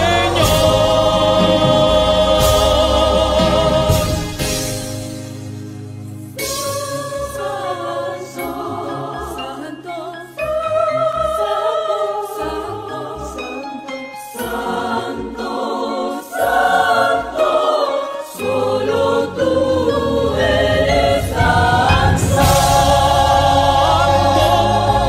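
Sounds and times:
choir singing worship song: 0.0s - 5.4s, 6.3s - 25.0s
bass: 0.0s - 7.8s, 18.5s - 25.0s
instrumental accompaniment: 0.0s - 25.0s.

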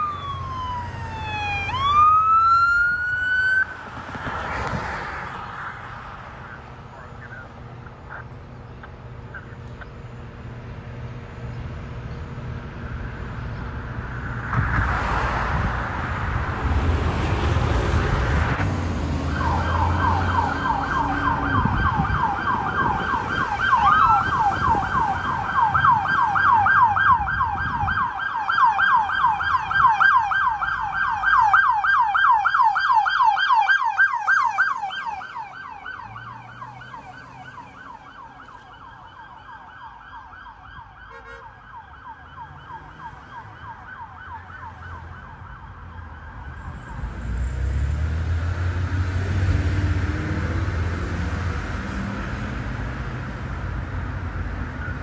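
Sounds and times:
police siren yelping: 0.0s - 3.7s, 19.2s - 47.1s.

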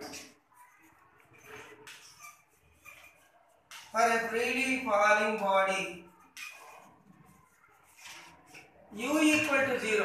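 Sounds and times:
chalk scratching on blackboard: 0.0s - 9.6s.

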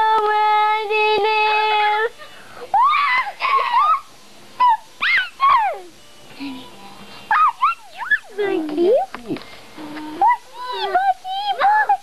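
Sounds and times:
girl squealing: 2.7s - 5.9s.

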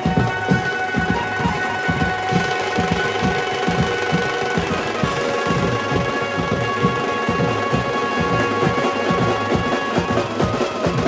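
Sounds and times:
drums beating fast: 0.0s - 11.0s
keyboard: 0.0s - 11.0s.

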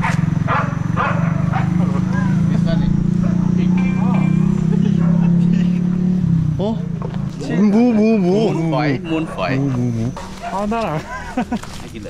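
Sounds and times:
low motor hum: 0.0s - 11.6s.

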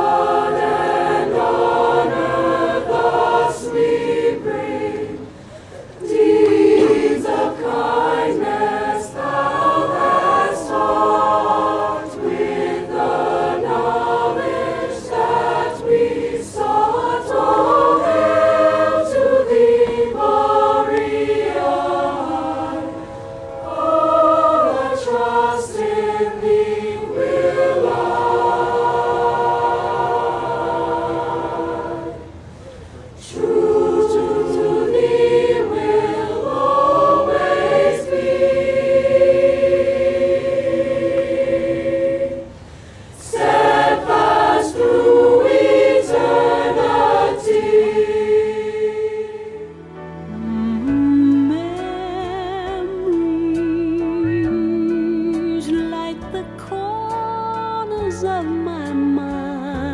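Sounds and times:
choir singing: 0.0s - 32.6s, 33.2s - 56.0s.

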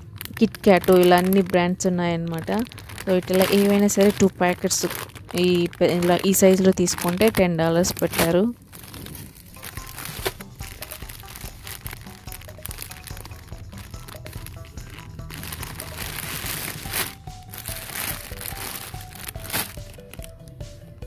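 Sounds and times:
plastic bags crinkling: 0.0s - 20.6s
simple background melody: 0.0s - 21.0s.

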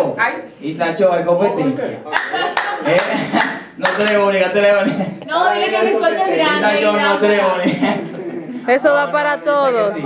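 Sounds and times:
sharp hand claps: 2.1s - 4.2s.

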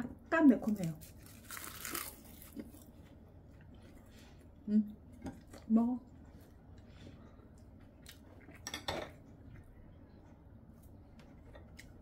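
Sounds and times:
crunchy chewing: 0.8s - 4.2s.

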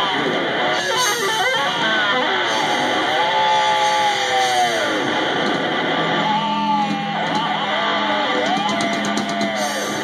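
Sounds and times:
electric guitar rock solo: 0.0s - 10.0s.

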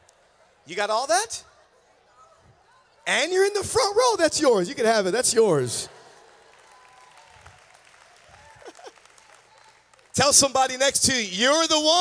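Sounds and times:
distant audience applause: 6.0s - 10.8s.

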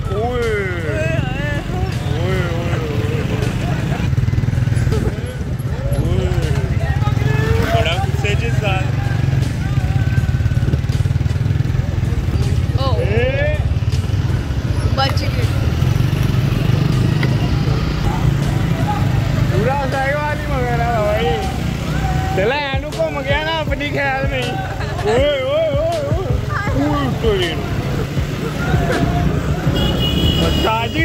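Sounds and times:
men shouting: 0.0s - 4.1s, 5.1s - 10.6s, 18.1s - 31.0s
motorcycle engines running: 0.0s - 31.0s.

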